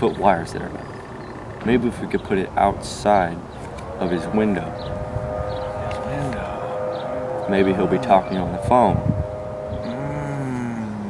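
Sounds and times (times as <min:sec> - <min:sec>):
steady high tone: 0:03.9 - 0:11.0
man humming low: 0:07.6 - 0:11.0.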